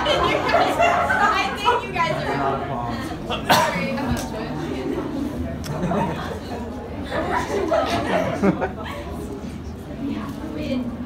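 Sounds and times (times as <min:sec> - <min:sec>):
group of voices chattering: 0:00.0 - 0:11.0.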